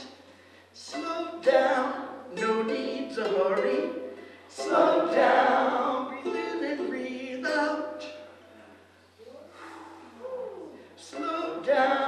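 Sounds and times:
breathy intake of air: 0:09.4 - 0:10.2.

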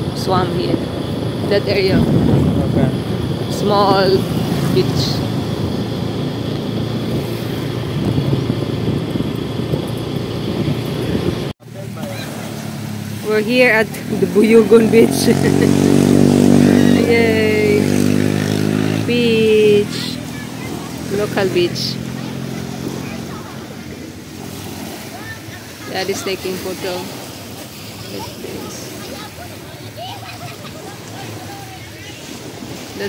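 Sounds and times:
wind on microphone: 0:00.0 - 0:11.6, 0:12.6 - 0:33.0
vehicle engine running: 0:00.0 - 0:32.4
waves washing onto beach: 0:00.0 - 0:33.0
faint voices: 0:10.9 - 0:33.0.

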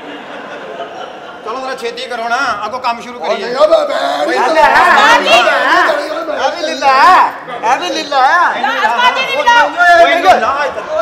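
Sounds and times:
voices talking over one another: 0:02.7 - 0:11.0.

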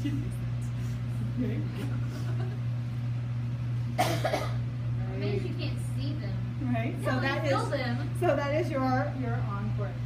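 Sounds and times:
person coughing: 0:04.0 - 0:04.6.

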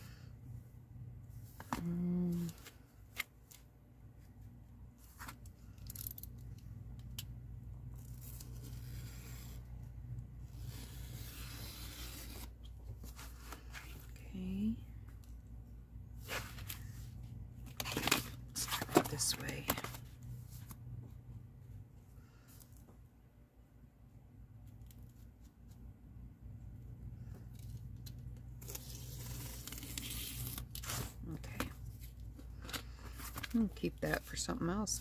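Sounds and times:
knife slicing and tearing strokes: 0:10.6 - 0:12.5.

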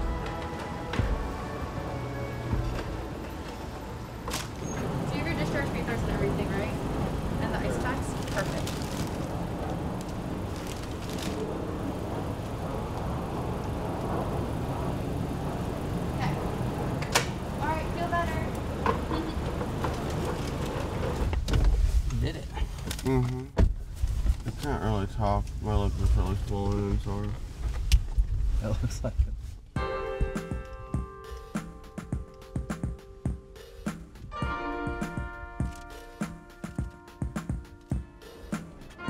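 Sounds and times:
idling cars and traffic rumble: 0:00.0 - 0:29.8.

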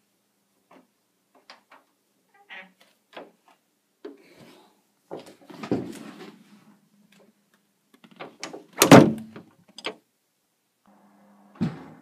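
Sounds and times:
loud heavy thump: 0:11.6 - 0:12.0.

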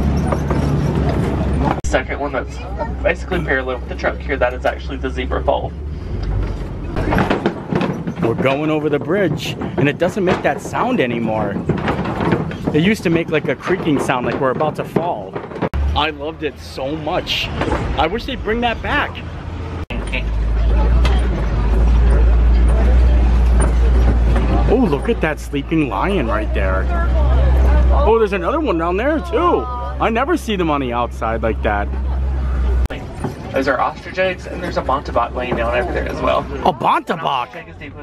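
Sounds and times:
truck engine rumble: 0:00.0 - 0:38.0
knocks and rattles on bridge: 0:06.4 - 0:15.8, 0:20.8 - 0:26.8.

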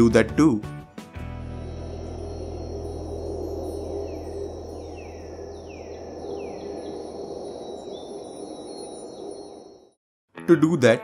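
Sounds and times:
high insect trill: 0:01.2 - 0:10.0
low hum: 0:01.2 - 0:10.0
falling chirp: 0:01.3 - 0:10.0.

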